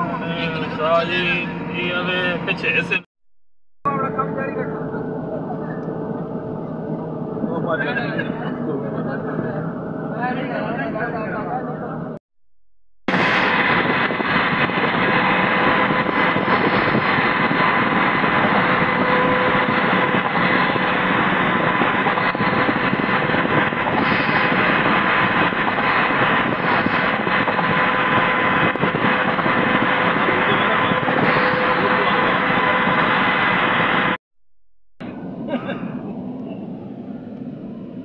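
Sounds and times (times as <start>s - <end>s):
wind noise: 13.1s - 34.2s.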